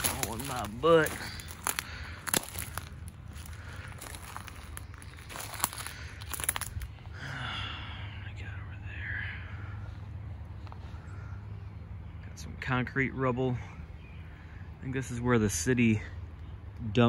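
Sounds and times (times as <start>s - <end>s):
sticks snapping: 0.0s - 3.1s
footsteps crunching on twigs and leaves: 0.0s - 7.2s.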